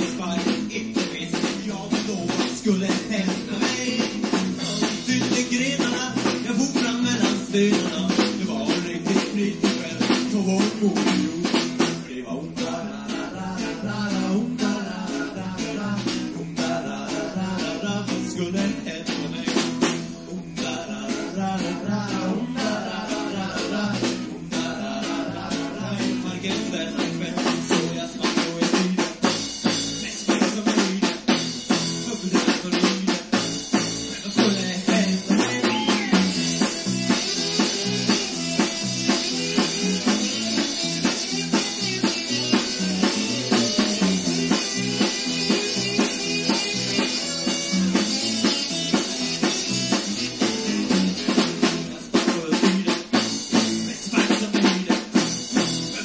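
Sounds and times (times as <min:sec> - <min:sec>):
drum kit hits: 0:00.0 - 0:12.2, 0:21.6 - 0:56.0
rock band playing live: 0:00.0 - 0:56.0.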